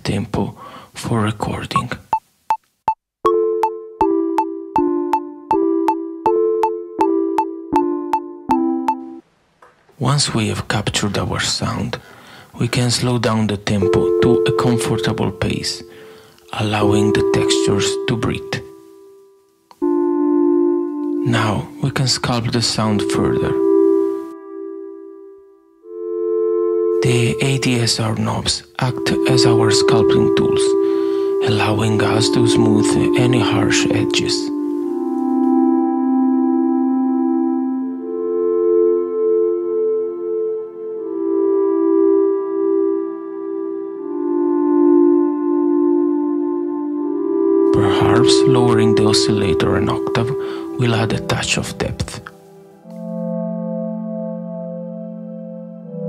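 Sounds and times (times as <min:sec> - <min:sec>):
synthesizer note: 0:03.3 - 0:09.2, 0:13.8 - 0:56.0.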